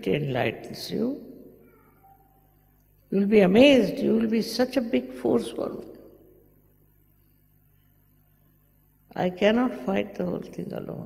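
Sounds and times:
faint room hum: 0:00.0 - 0:11.0
woman speaking through microphone: 0:03.1 - 0:05.9, 0:09.1 - 0:11.0.

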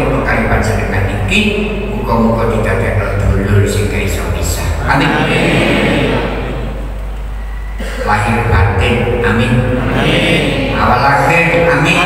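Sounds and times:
low mains hum with hiss: 0:00.0 - 0:12.0.

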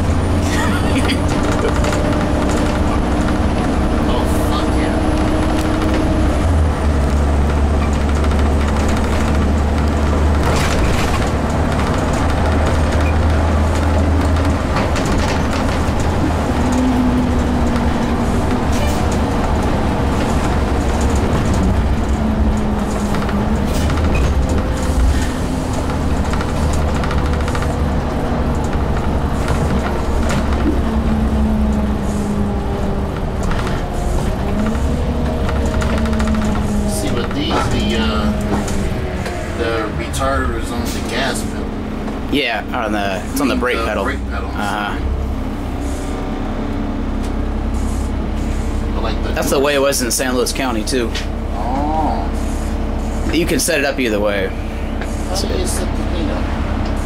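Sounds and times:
bus body rattling: 0:00.0 - 0:57.0
bus engine drone: 0:00.0 - 0:57.0
whining drivetrain: 0:00.0 - 0:57.0.

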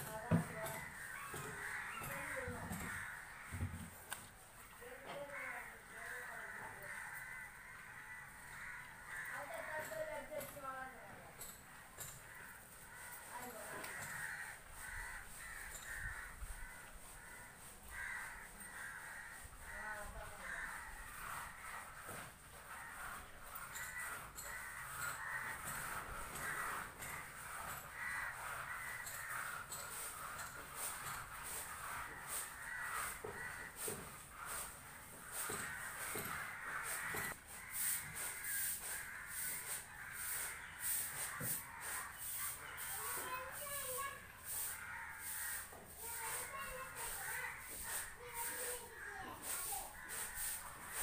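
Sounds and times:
crows cawing: 0:00.1 - 0:51.0.

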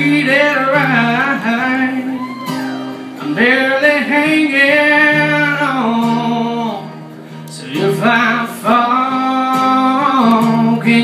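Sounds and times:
acoustic guitar: 0:00.0 - 0:11.0
young man singing: 0:00.0 - 0:11.0.

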